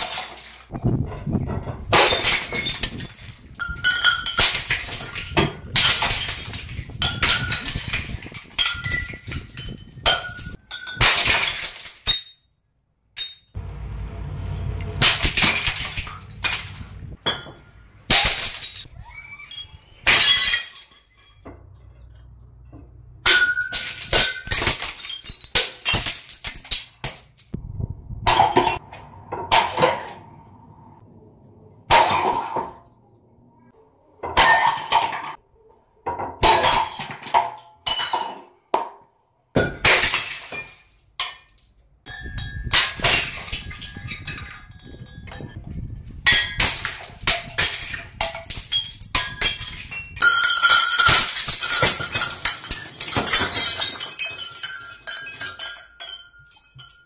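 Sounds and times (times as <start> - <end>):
glass bottles shattering: 0.0 - 13.6, 14.4 - 27.6, 28.3 - 30.5, 31.9 - 33.0, 34.2 - 35.4, 36.1 - 38.6, 39.5 - 57.0
glass shards clinking: 1.9 - 12.5, 15.0 - 18.9, 19.6 - 27.6, 46.2 - 57.0.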